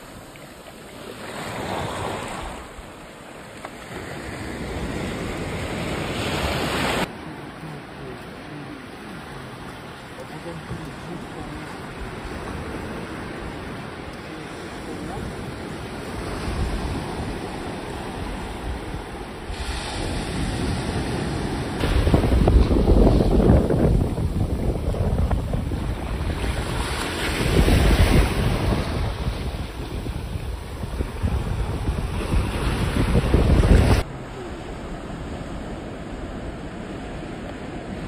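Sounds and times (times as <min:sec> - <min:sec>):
waves breaking on sandy shore: 0:00.0 - 0:38.0
wind buffeting microphone: 0:14.9 - 0:38.0.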